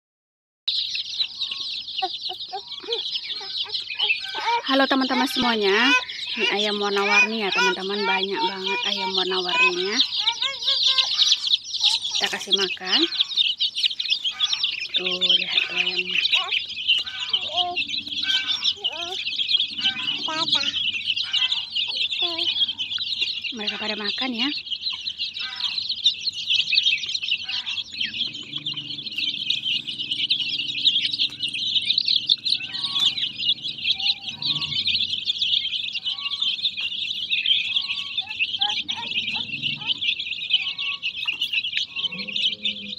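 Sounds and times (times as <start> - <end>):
chicks cheeping: 0.7 - 42.9
lower bending calls: 1.2 - 42.9.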